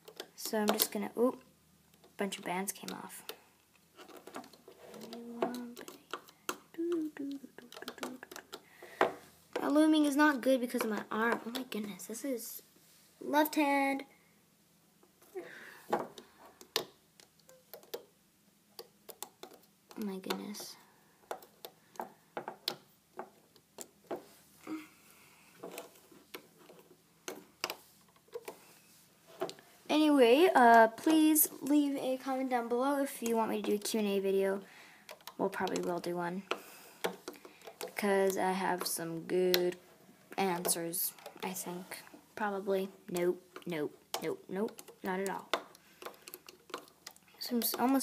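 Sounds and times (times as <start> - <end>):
hook clicking on plastic pins: 4.0 - 6.8, 7.6 - 9.7, 18.8 - 24.2, 35.0 - 39.8, 40.4 - 41.7, 43.1 - 48.0
person humming: 6.7 - 8.4
metal hook clicking on plastic pegs: 35.1 - 39.8, 43.1 - 48.0.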